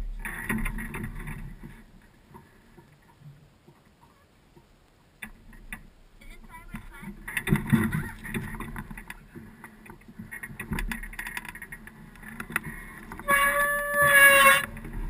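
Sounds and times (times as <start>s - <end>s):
loud steady horn toot: 13.2s - 14.8s.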